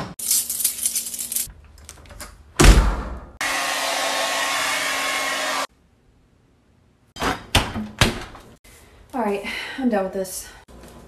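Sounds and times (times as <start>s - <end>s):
electric blower motor whooshing: 3.4s - 5.7s.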